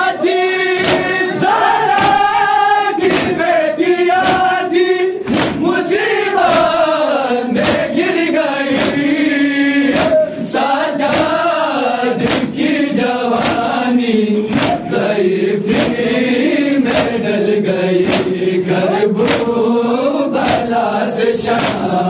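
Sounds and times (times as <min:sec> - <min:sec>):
men chanting in unison: 0:00.0 - 0:22.0
chest-beating slaps: 0:00.8 - 0:03.5, 0:04.1 - 0:06.9, 0:07.5 - 0:09.2, 0:09.8 - 0:10.4, 0:11.0 - 0:11.5, 0:12.2 - 0:12.7, 0:13.3 - 0:13.8, 0:14.4 - 0:16.2, 0:16.8 - 0:17.3, 0:18.0 - 0:19.7, 0:20.4 - 0:20.8, 0:21.4 - 0:22.0.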